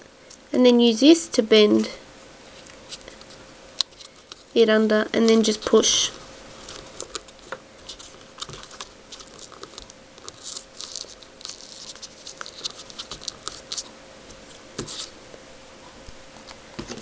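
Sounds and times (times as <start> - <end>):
paper rustling and crinkling: 5.3 - 15.2.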